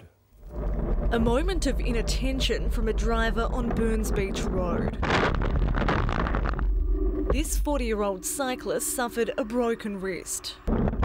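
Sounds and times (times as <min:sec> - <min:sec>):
wind rumble on microphone: 0:00.4 - 0:07.9.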